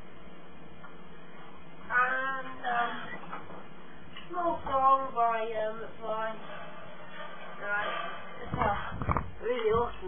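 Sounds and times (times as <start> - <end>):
microphone bumping thuds: 8.5 - 10.0.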